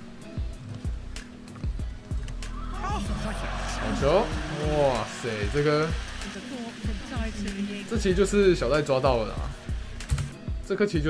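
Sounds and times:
background music: 0.0 - 11.0
speech: 2.8 - 9.6, 10.6 - 11.0.

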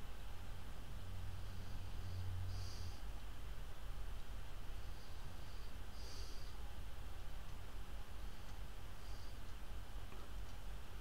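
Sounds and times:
faint hiss: 0.0 - 11.0
low hum: 0.0 - 11.0.

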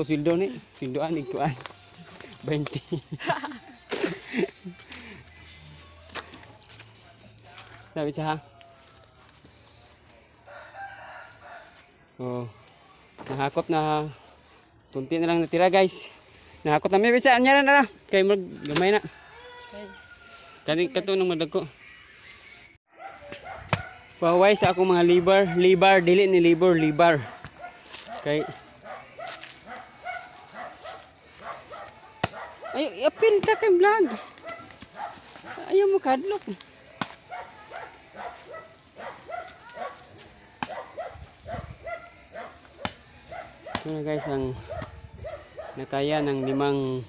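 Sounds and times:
faint rooster crowing: 7.0 - 12.0, 18.4 - 21.0.

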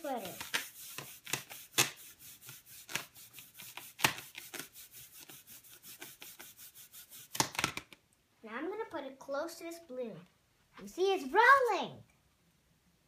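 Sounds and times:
balloon rubbed against a sweater: 0.0 - 7.4.

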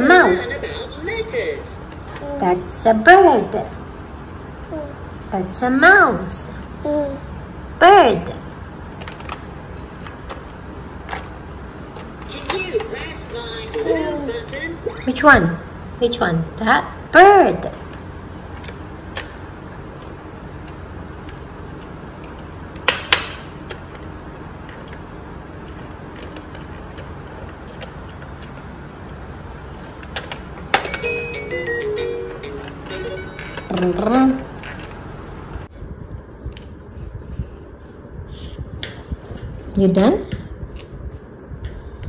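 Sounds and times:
toy beeping tune: 30.9 - 33.7.

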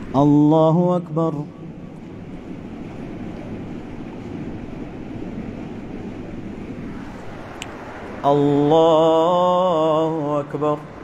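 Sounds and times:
rushing room noise: 0.0 - 11.0.

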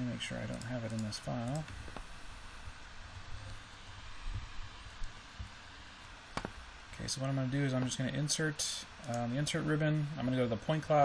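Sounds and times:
faint low rumble and hiss: 0.0 - 11.0.

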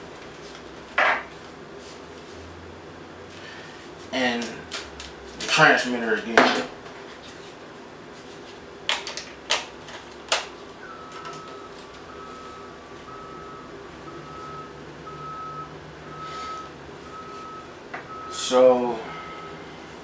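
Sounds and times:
electronic beeps: 10.8 - 18.6.

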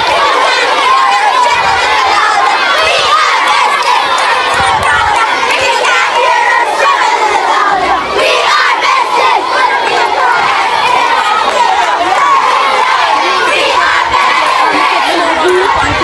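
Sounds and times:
children shouting together: 0.0 - 16.0.

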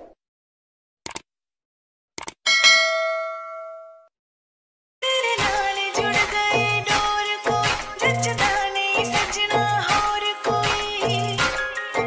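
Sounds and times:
quick clicks: 1.0 - 1.3, 2.2 - 2.4
bell ding: 2.5 - 4.1.

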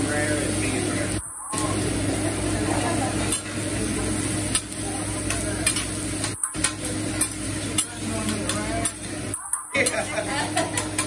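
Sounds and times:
food sizzling on griddle: 0.0 - 11.0.

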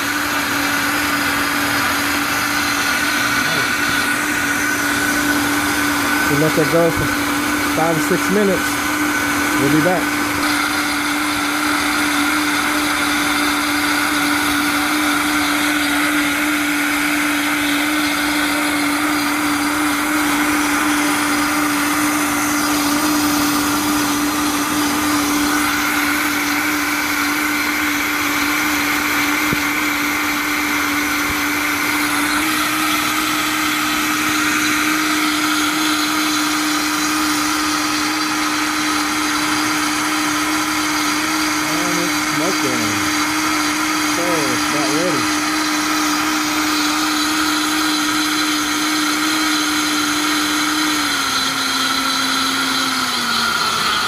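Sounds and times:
blender motor running: 0.0 - 54.0.

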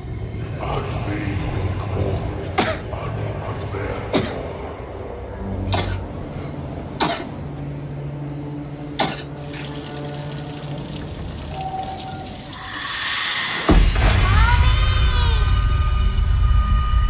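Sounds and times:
child coughing: 2.6 - 2.8, 5.7 - 6.1, 7.0 - 7.4, 9.0 - 9.4.

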